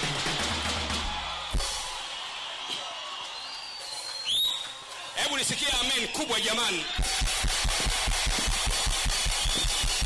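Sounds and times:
congregation cheering: 0.0 - 10.0.

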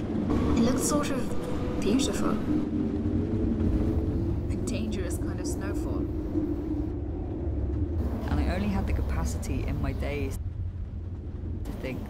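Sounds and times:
low rumbling drone: 0.0 - 12.0.

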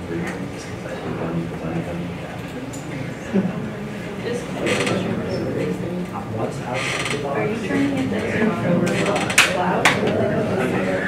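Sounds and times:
indistinct voices: 0.0 - 11.0.

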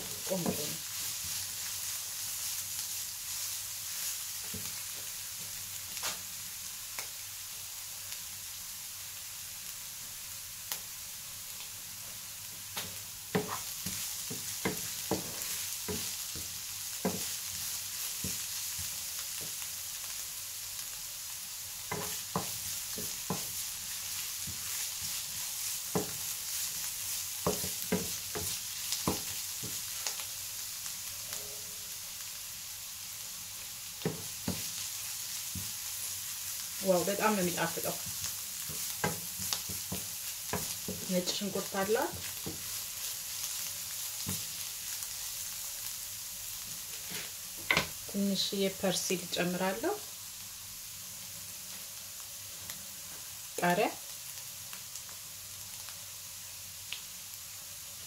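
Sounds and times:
beetroot sizzling in a frying pan: 0.0 - 58.0
wooden spoon scraping a pan: 13.4 - 19.6, 21.9 - 30.2, 46.8 - 47.9.

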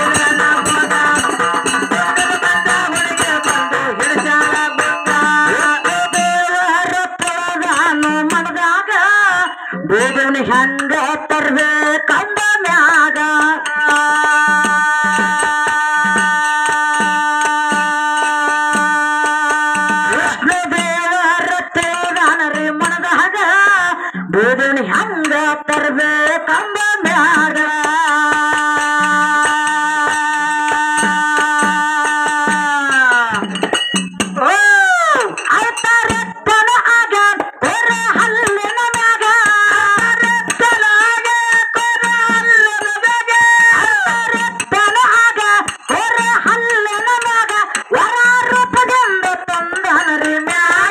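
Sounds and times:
small hand cymbals: 0.0 - 8.4, 27.8 - 36.5, 37.6 - 50.9
steady drum beat: 0.0 - 8.5, 12.3 - 22.8, 27.0 - 36.7, 37.3 - 50.9
person singing into microphone: 0.0 - 50.9.

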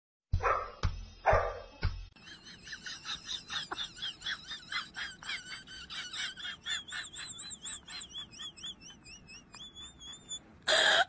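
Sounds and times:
dog whining: 8.4 - 11.0.

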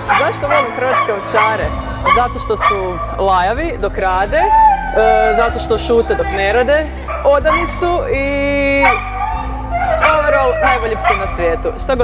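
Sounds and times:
dog whining yips: 8.8 - 11.4.

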